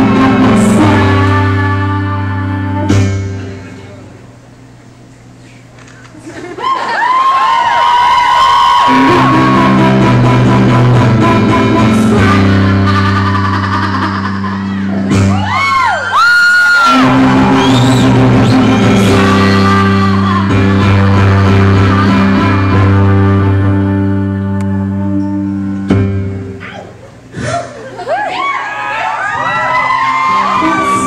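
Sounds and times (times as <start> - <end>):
woman singing: 0.0 - 3.2, 8.8 - 15.0, 16.8 - 25.7, 30.3 - 31.0
sustained keyboard chords: 17.0 - 27.3.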